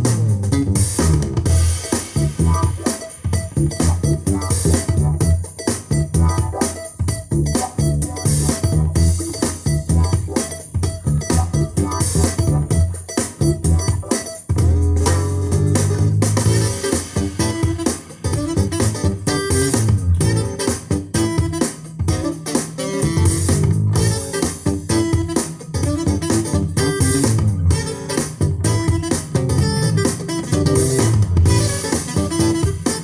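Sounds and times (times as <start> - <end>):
instrumental music through speaker: 0.0 - 33.0.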